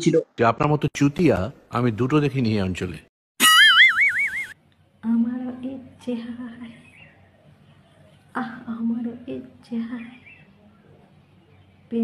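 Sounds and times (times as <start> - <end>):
cartoon boing: 3.4 - 4.6.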